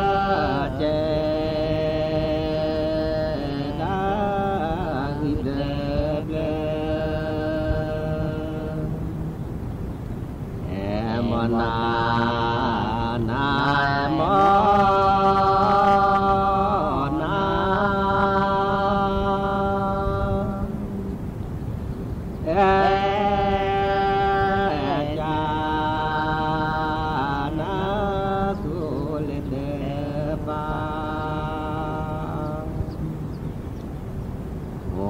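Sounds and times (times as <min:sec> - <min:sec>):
person chanting held notes: 0:00.0 - 0:09.4, 0:10.6 - 0:21.2, 0:22.4 - 0:33.4.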